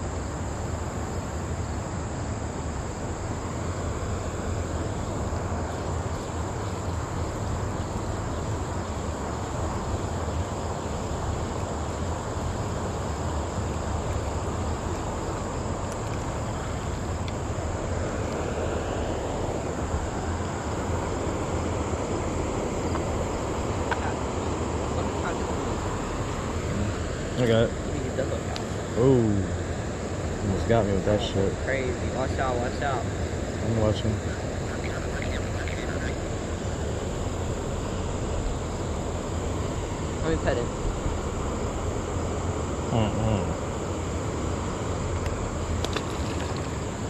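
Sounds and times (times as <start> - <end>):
crickets droning: 0.0 - 47.0.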